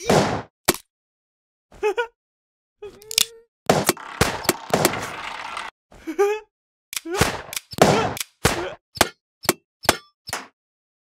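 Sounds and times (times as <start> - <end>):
cartoon gunshots: 3.7 - 5.2, 7.1 - 8.8.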